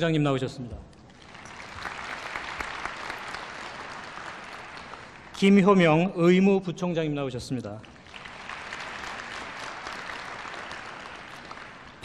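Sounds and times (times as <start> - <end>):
audience applauding: 1.1 - 5.9, 7.8 - 12.0.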